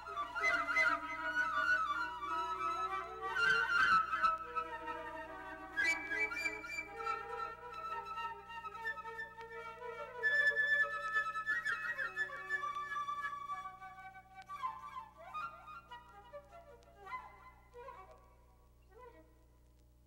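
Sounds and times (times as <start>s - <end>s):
solo flute melody: 0.0s - 19.4s.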